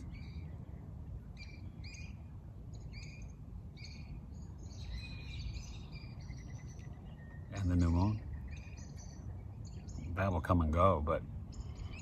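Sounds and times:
bird chirping faintly: 0.0s - 12.0s
low steady background hum: 0.0s - 12.0s.

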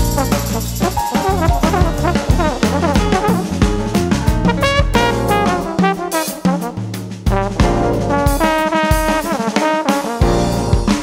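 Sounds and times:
drum kit: 0.0s - 11.0s
jazz brass section chords: 0.0s - 11.0s.

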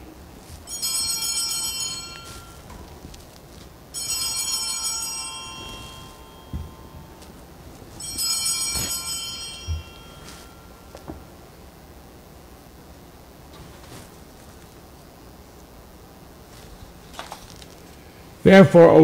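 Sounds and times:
small altar bells ringing: 0.6s - 11.4s.

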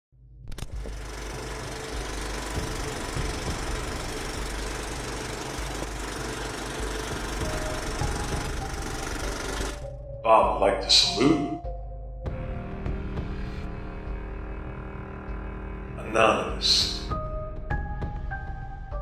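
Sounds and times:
film projector clattering: 0.5s - 9.9s.

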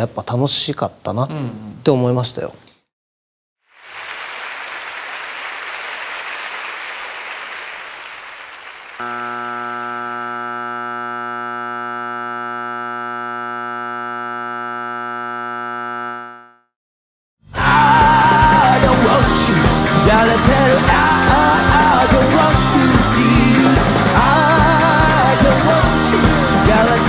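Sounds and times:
loud electronic buzzing tone: 9.0s - 16.7s.

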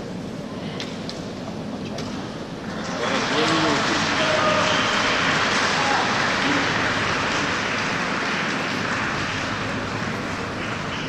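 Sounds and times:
reverberant pool hall noise: 0.0s - 11.0s.

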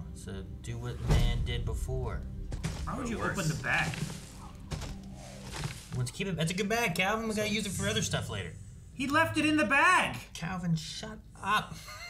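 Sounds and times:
quiet film soundtrack: 0.0s - 12.0s
dull thud: 1.0s - 6.0s.

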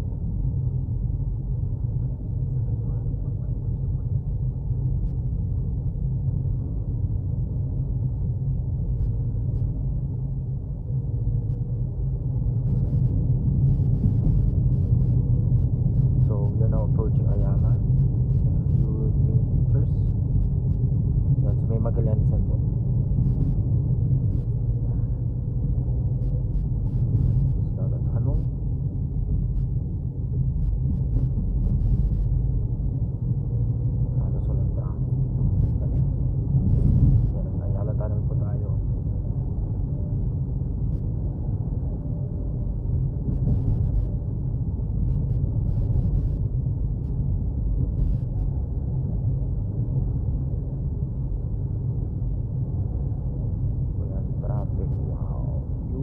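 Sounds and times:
car engine and tyres rumbling: 0.0s - 56.0s.

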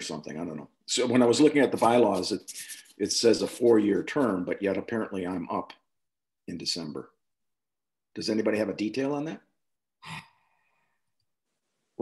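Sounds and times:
person sighing: 10.0s - 10.4s.

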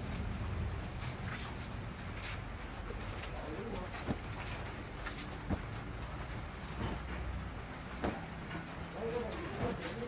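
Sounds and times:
steady low rumble: 0.0s - 2.9s.

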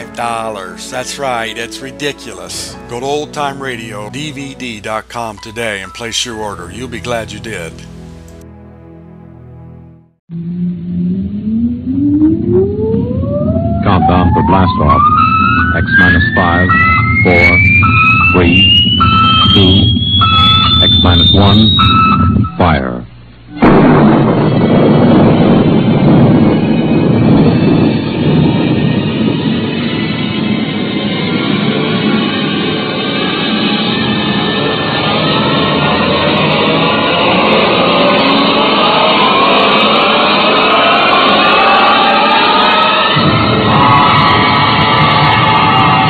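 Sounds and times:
theme music: 0.0s - 46.0s
rocket roar: 23.5s - 46.0s.

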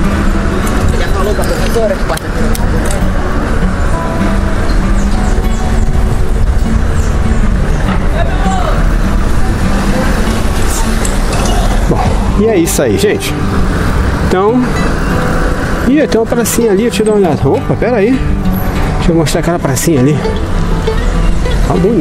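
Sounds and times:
wind rumble on microphone: 0.0s - 12.6s
car traffic: 0.0s - 22.0s
indistinct voices: 0.0s - 22.0s.

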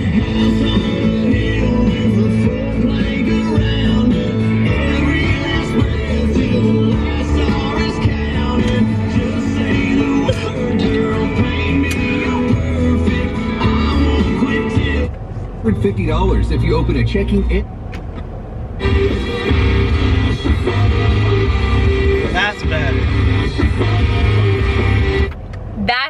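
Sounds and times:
song with singing and guitar on radio: 0.0s - 26.0s.

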